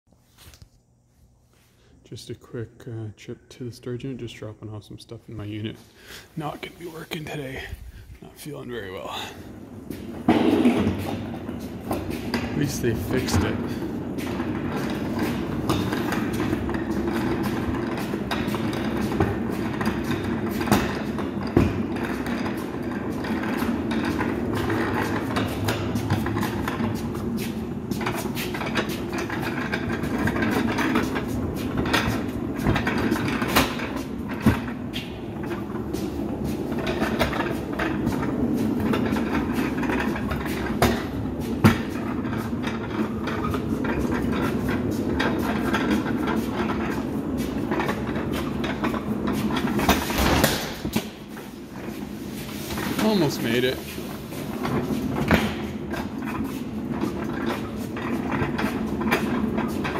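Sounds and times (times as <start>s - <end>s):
dolly wheels rolling on concrete: 5.4s - 59.9s.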